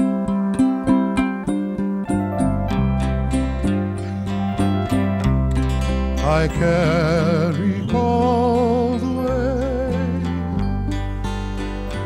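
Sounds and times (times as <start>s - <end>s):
acoustic guitar and ukulele playing: 0.0s - 12.0s.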